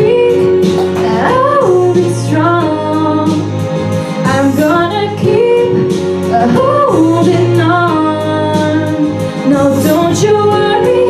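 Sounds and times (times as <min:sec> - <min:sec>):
instrumental accompaniment: 0:00.0 - 0:11.0
woman singing into microphone: 0:00.0 - 0:11.0.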